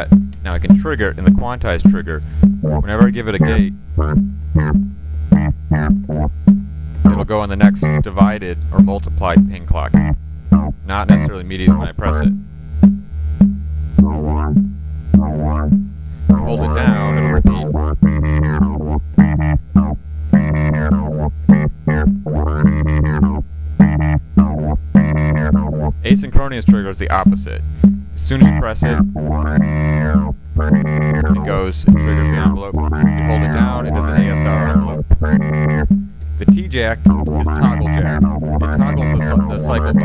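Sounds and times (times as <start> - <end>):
short synthesizer notes: 0.0 - 40.0
steady low hum: 0.0 - 40.0.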